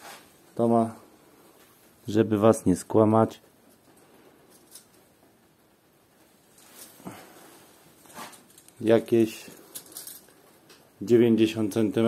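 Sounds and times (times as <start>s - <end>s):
man speaking: 0.6s - 1.1s, 2.0s - 3.4s, 8.8s - 9.6s, 11.0s - 12.0s
faint handling noise: 3.5s - 5.4s, 6.2s - 11.0s.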